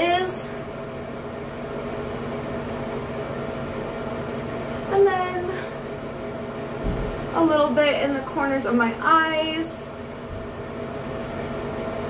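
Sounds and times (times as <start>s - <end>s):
fan unit humming: 0.0s - 12.0s.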